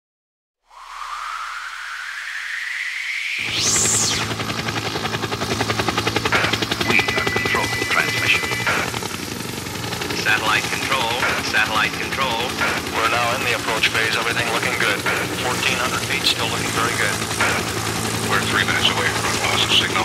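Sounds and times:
rising electronic whoosh: 0.6s - 4.7s
held electronic tone: 0.7s - 4.7s, 6.2s - 9.1s
fast-pulsing drone: 0.7s - 20.0s.

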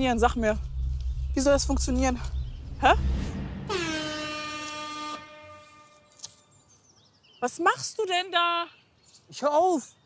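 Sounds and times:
horn-like blast: 2.8s - 6.2s.

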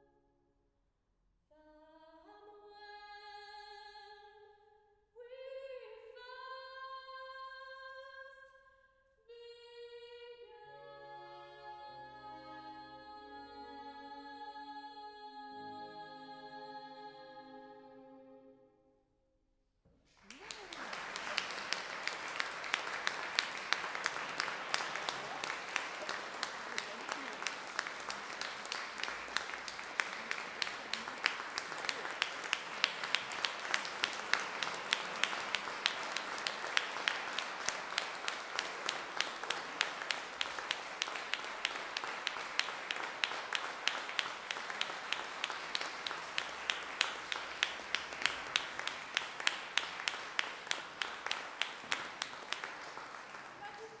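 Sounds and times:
nearby hands clapping: 20.1s - 54.0s
audience applauding: 20.2s - 54.0s.

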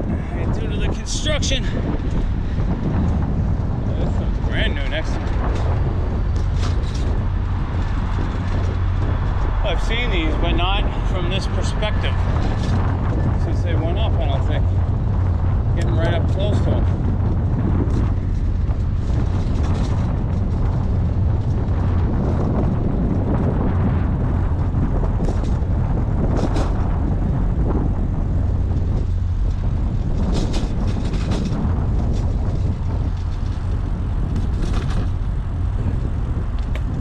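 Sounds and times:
bicycle road noise: 0.0s - 37.0s
wind rumble on microphone: 0.0s - 37.0s.

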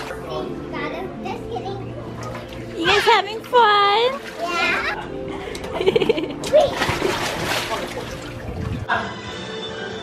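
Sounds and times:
water splashing in a pool: 0.0s - 0.3s, 2.0s - 5.0s, 6.4s - 8.9s
background music: 0.0s - 10.0s
child's voice: 4.3s - 5.1s.

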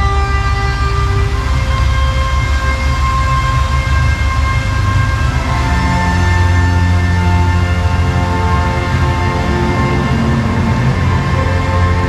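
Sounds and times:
heavy steady bass: 0.0s - 12.0s
long held chords: 0.0s - 12.0s.

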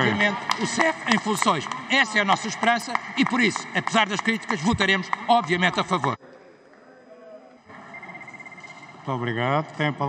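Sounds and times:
faint high steady tone: 5.6s - 10.0s.

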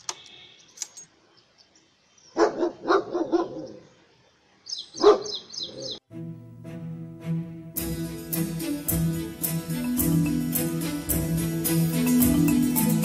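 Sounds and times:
dog barking: 2.4s - 3.8s, 5.0s - 6.0s.

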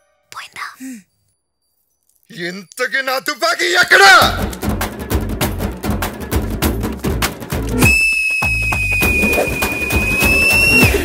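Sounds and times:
background music with percussion: 4.2s - 11.0s
high steady whistle: 7.8s - 11.0s.

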